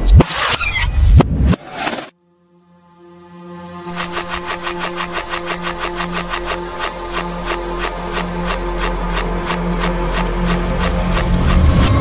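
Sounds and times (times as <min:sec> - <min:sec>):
fast ticking percussion: 0:03.9 - 0:12.0
sustained synth tones: 0:03.9 - 0:12.0.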